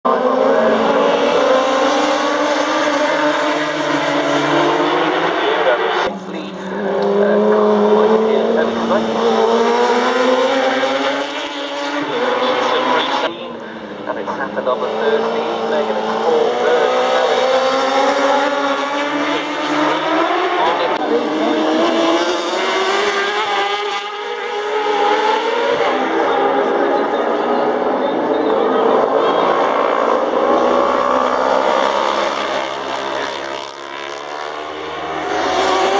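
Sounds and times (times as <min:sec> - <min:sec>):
motorcycles accelerating hard: 0:00.1 - 0:35.9.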